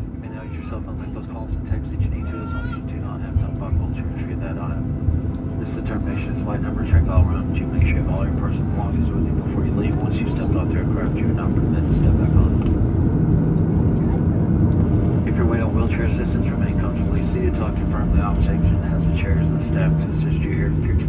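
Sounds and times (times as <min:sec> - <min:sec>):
jet engines idling: 0:00.0 - 0:21.0
passengers talking indistinctly: 0:00.0 - 0:21.0.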